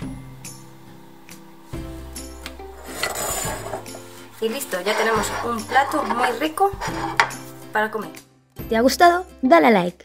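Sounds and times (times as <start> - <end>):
background music sustained chords: 0.0 - 9.5
serving spoon scraping plate: 2.8 - 7.5.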